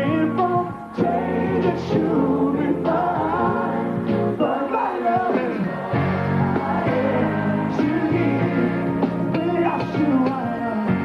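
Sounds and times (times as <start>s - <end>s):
band backing music: 0.0s - 11.0s
male vocal group singing: 0.0s - 11.0s.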